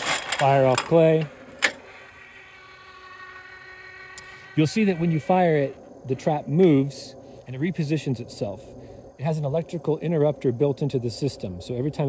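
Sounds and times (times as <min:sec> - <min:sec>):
electric motors whining: 0:00.0 - 0:08.0.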